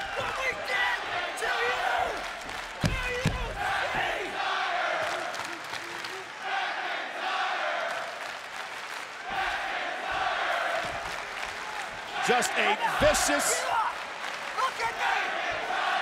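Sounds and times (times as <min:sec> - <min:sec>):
crowd cheering and chanting: 0:00.0 - 0:16.0.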